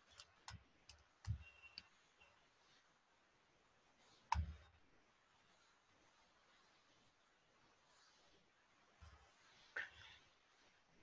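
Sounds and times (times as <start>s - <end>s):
computer mouse clicks: 0.0s - 1.9s, 4.3s - 4.7s.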